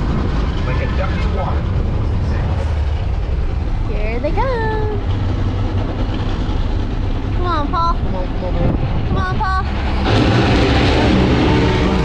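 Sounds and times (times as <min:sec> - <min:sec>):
tyres on the road: 0:00.0 - 0:12.0
vehicle engine rumble: 0:00.0 - 0:12.0.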